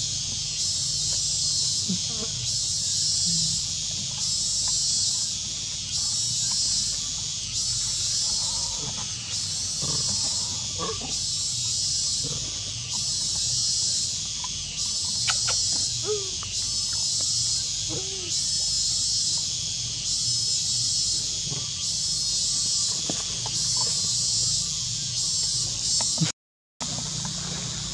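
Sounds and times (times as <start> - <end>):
high-pitched insect chorus: 0.0 - 27.9
monkeys squeaking: 15.0 - 18.5.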